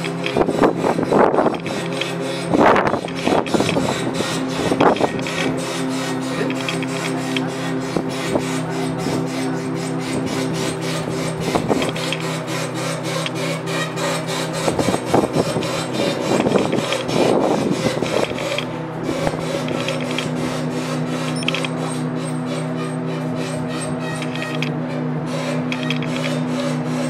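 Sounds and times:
rapid regular clicking: 0:00.0 - 0:08.6
scraping and rubbing: 0:00.0 - 0:27.0
steady machine hum: 0:00.0 - 0:27.0
winch cranking: 0:00.0 - 0:27.0.

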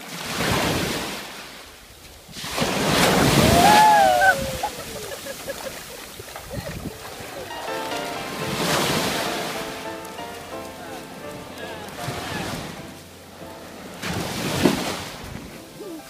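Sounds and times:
feet splashing in surf: 0:00.0 - 0:16.0
waves washing on sandy beach: 0:00.0 - 0:16.0
background music: 0:07.4 - 0:16.0
person speaking: 0:08.9 - 0:13.2.

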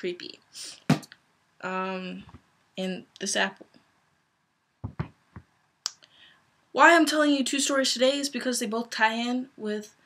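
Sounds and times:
sharp knocks and clicks: 0:04.8 - 0:05.5.

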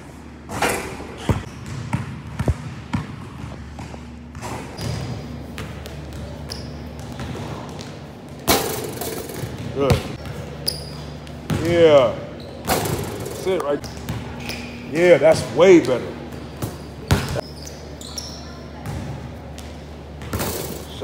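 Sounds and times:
basketball bouncing on wooden floor: 0:01.2 - 0:10.4, 0:11.2 - 0:11.7, 0:16.4 - 0:17.4.

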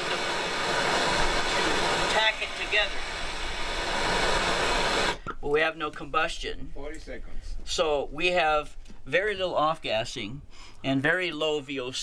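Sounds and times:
gas torch flame hissing: 0:00.0 - 0:05.2.

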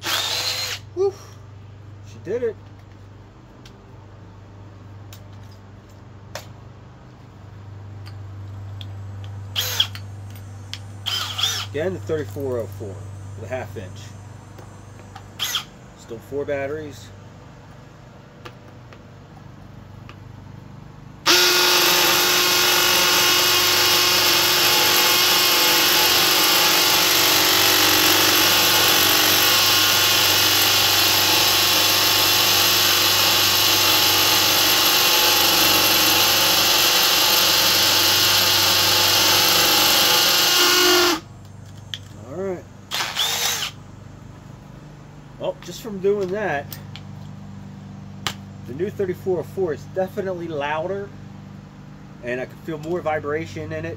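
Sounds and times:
hammer drill boring into concrete: 0:00.0 - 0:00.8, 0:09.6 - 0:10.0, 0:11.1 - 0:11.8, 0:15.4 - 0:15.7, 0:21.3 - 0:41.2, 0:42.9 - 0:43.8
steady low hum: 0:00.0 - 0:39.4, 0:40.1 - 0:53.9
drill bit clicking in chuck: 0:21.3 - 0:27.3.

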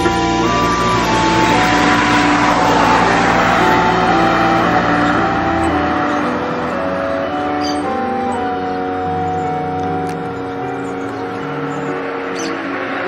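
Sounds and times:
low rumble: 0:00.0 - 0:07.5
car passing by: 0:00.0 - 0:13.0
soft music with held notes: 0:00.0 - 0:13.0.

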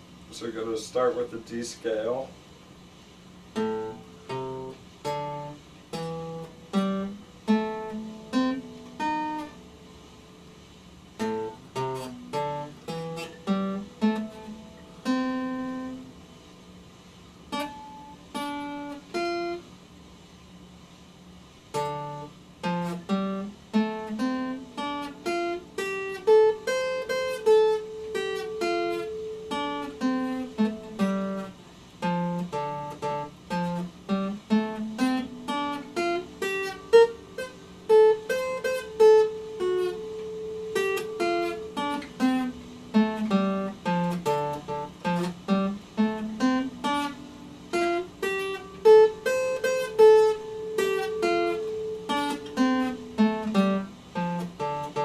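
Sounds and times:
acoustic guitar picking scale: 0:00.0 - 0:55.0.

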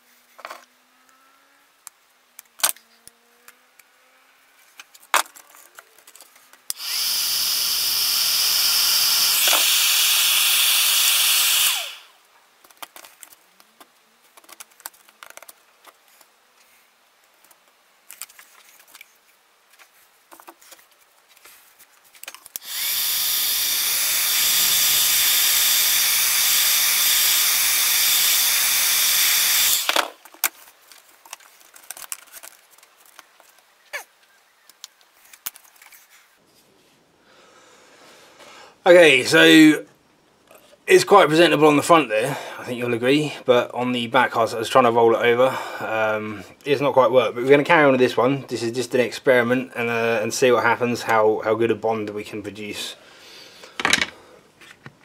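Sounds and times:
heat gun blowing: 0:06.7 - 0:12.2, 0:22.5 - 0:30.3.

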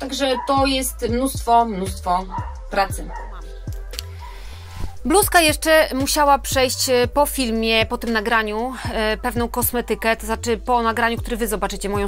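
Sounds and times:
music with low beat: 0:00.0 - 0:12.0.

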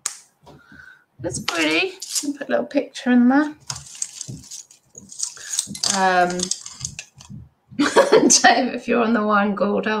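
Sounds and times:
person speaking: 0:01.2 - 0:08.6
metal jewellery jingling: 0:03.6 - 0:07.4.

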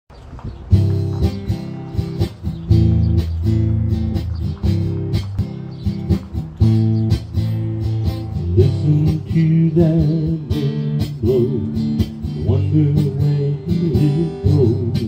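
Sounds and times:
strummed acoustic guitar: 0:00.7 - 0:15.0.

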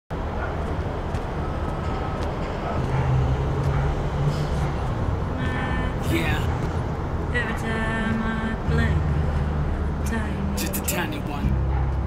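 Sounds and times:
street traffic rumble: 0:00.1 - 0:12.0
vehicle passing: 0:00.2 - 0:12.0
person speaking: 0:10.5 - 0:11.6.

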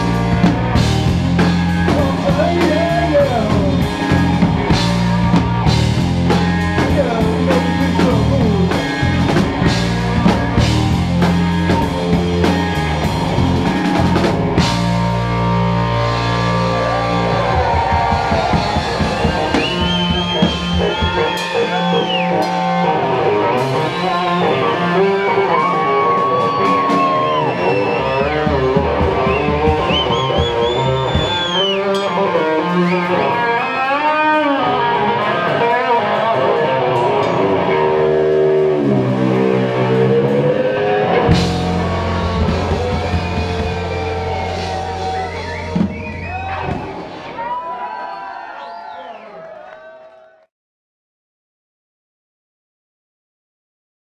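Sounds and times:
drum kit: 0:00.0 - 0:47.3
electric guitar solo: 0:01.6 - 0:47.4.

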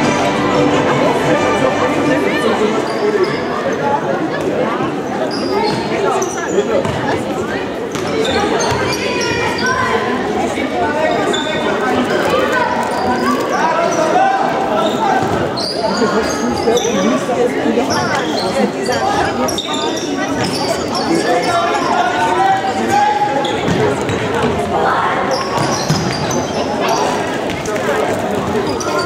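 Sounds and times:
shoes squeaking on court: 0:02.8 - 0:03.7, 0:05.2 - 0:07.1, 0:07.9 - 0:09.9, 0:14.8 - 0:17.2, 0:17.8 - 0:22.0, 0:25.2 - 0:29.0.

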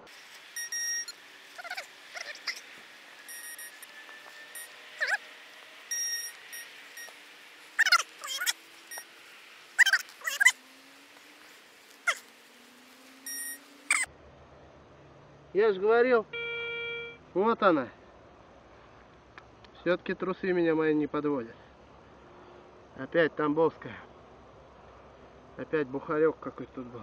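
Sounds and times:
short squealing calls: 0:00.0 - 0:14.1
metal detector beeps: 0:00.6 - 0:02.6, 0:03.2 - 0:05.3, 0:05.9 - 0:07.2, 0:07.8 - 0:09.1, 0:13.2 - 0:14.1.

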